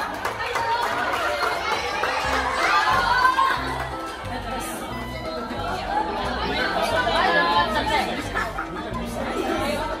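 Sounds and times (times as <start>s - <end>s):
children chattering and calling out: 0.3s - 10.0s.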